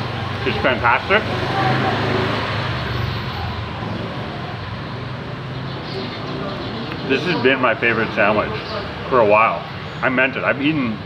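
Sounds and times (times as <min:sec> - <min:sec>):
road traffic: 0:00.0 - 0:11.0.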